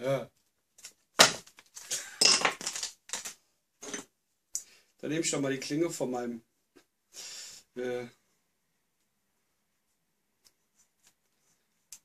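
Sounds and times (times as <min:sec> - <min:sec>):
metal tools clattering on wood: 0:02.1 - 0:02.9, 0:03.8 - 0:04.1.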